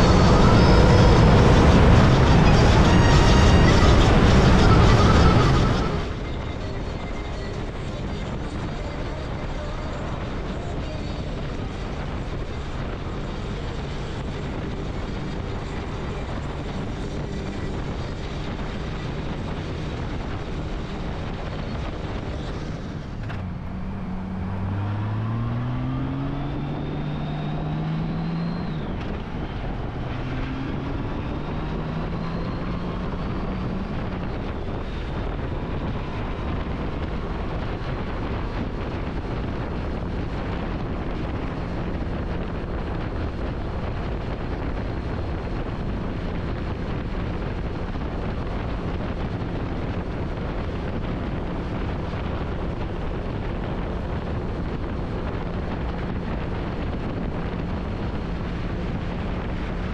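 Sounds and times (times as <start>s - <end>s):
motorcycle engine accelerating: 0.0s - 59.9s
wind and road rush: 0.0s - 59.9s.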